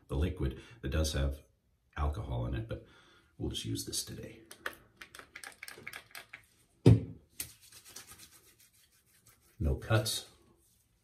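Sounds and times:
hands rubbing balm into skin: 0:07.3 - 0:11.0.

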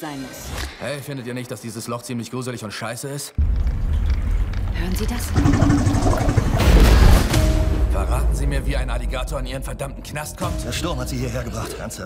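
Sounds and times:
trailer music: 0:03.4 - 0:11.7.

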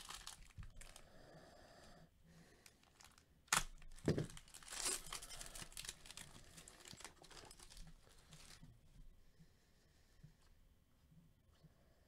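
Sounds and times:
foil crinkling: 0:00.0 - 0:01.0, 0:02.7 - 0:08.6
foil pack ripping: 0:00.0 - 0:01.0, 0:02.8 - 0:08.6.

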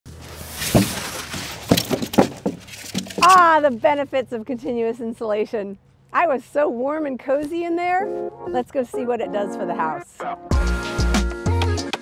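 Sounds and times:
foam boards rustling and scraping: 0:00.1 - 0:04.0
sharp knocks: 0:00.7 - 0:03.4.

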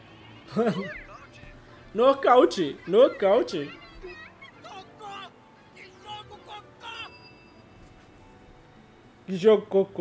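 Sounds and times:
faint high tones: 0:05.6 - 0:08.1.

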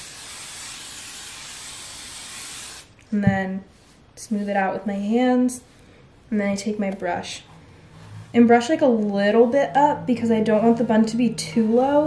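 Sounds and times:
aerosol can spraying: 0:00.0 - 0:02.9.

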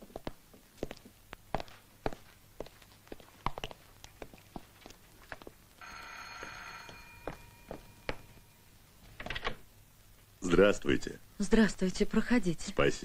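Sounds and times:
footsteps: 0:00.0 - 0:09.3
electric bell ringing: 0:05.8 - 0:08.7.

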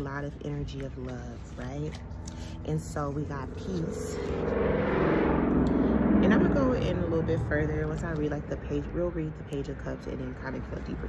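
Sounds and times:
motor vehicle passing: 0:01.2 - 0:11.0.

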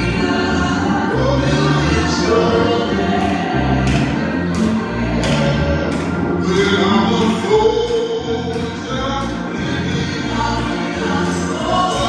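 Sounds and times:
low instrumental accompaniment: 0:00.0 - 0:12.0
women singing gospel song: 0:00.0 - 0:12.0.

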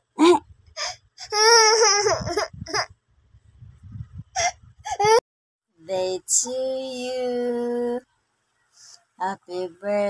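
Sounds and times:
toddler whining cry: 0:00.8 - 0:02.8.

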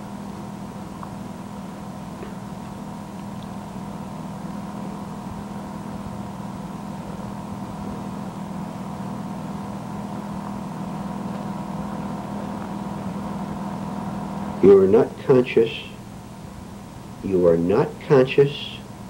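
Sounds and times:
tape hum and hiss: 0:00.0 - 0:19.0.

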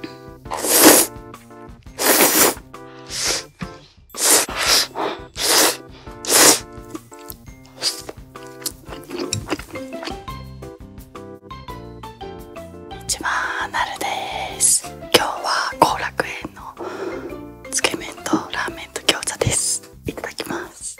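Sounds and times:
background music: 0:00.0 - 0:20.9
noodle slurping: 0:00.5 - 0:01.2, 0:01.9 - 0:10.3.

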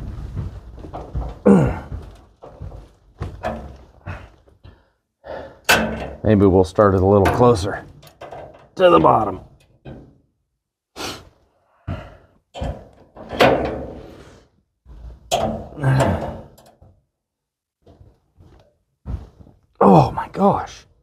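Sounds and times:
straining grunts and breaths: 0:00.6 - 0:06.0, 0:10.9 - 0:16.9
wrench thunks and clanks on metal: 0:05.6 - 0:06.2, 0:07.2 - 0:10.2, 0:12.5 - 0:14.1, 0:15.3 - 0:16.8.

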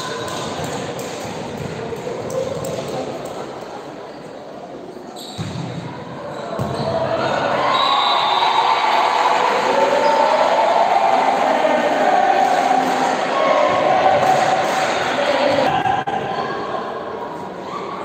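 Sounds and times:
crowd shouting and cheering: 0:05.6 - 0:18.0.

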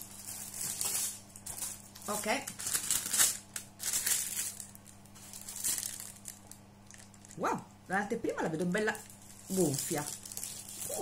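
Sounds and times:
cardboard box and paper rustling: 0:09.3 - 0:11.0.

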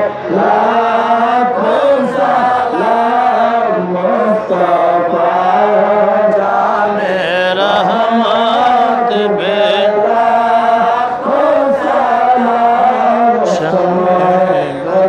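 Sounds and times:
man chanting a hymn over loudspeaker: 0:00.0 - 0:15.0.

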